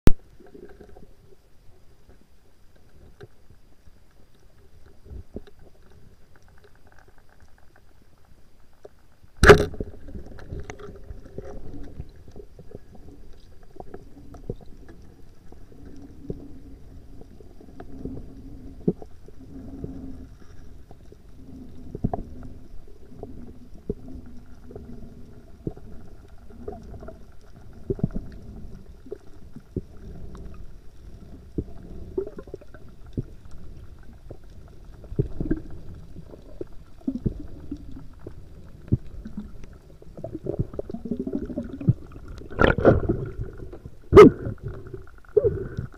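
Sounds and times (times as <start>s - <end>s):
low underwater rumble: 0.1s - 45.9s
sharp underwater knocks and clicks: 8.8s - 15.1s, 35.0s - 45.9s.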